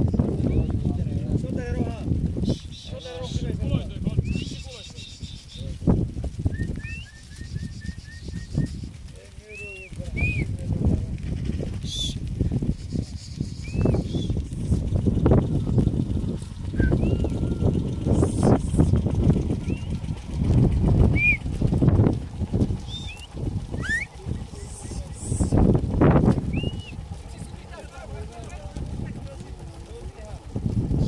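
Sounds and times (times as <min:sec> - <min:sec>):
herd of goats hooves on dirt: 0:00.0 - 0:31.0
chirping bird calls: 0:02.4 - 0:03.4, 0:04.2 - 0:05.8, 0:06.5 - 0:10.5, 0:11.3 - 0:20.2, 0:22.8 - 0:25.6, 0:26.4 - 0:27.6.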